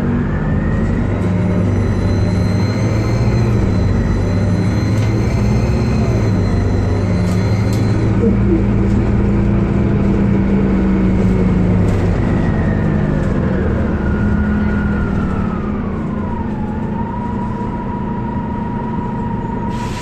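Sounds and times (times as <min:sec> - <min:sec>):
bus engine droning: 0:00.0 - 0:20.0
high drivetrain whine: 0:00.0 - 0:20.0.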